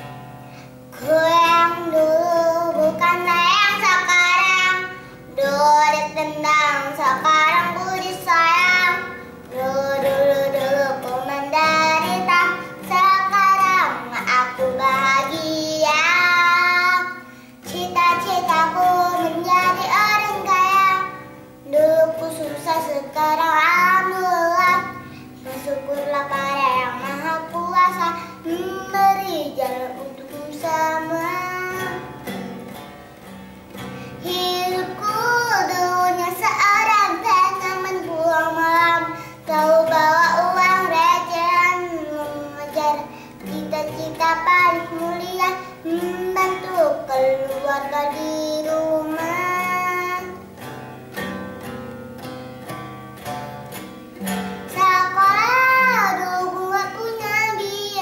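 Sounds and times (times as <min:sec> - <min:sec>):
girl singing: 0:00.0 - 0:32.4, 0:33.7 - 0:50.7, 0:54.2 - 0:58.0
light guitar accompaniment: 0:00.0 - 0:58.0.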